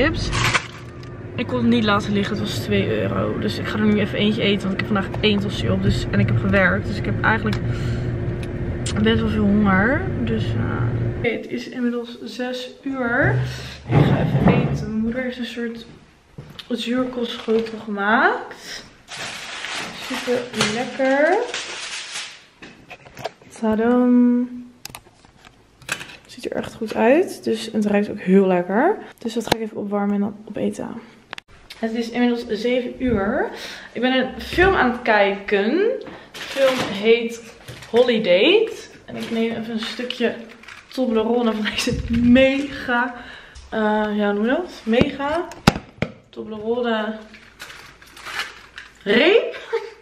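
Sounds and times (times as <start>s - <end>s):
cardboard box and foil rustling: 17.2s - 17.9s, 19.0s - 22.5s, 36.3s - 41.8s, 47.1s - 49.4s.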